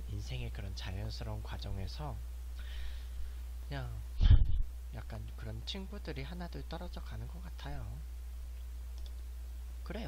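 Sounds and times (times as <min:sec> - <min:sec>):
low electrical hum: 0:00.0 - 0:10.0
faint clicks: 0:08.6 - 0:09.3.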